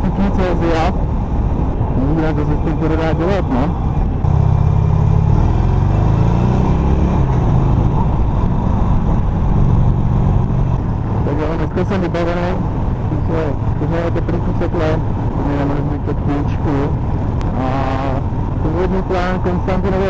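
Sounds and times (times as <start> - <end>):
motorcycle engine rumbling: 0.0 - 20.0
wind noise: 0.0 - 20.0.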